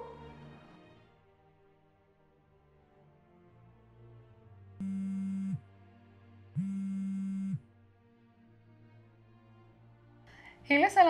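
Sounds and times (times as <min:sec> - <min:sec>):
soft background music: 0:00.0 - 0:11.0
phone vibrating: 0:04.8 - 0:05.6, 0:06.6 - 0:07.6.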